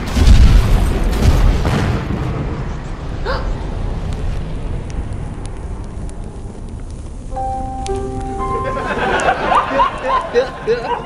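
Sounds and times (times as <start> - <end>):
explosion rumbling: 0.0 - 7.3
faint clicks: 4.0 - 8.3.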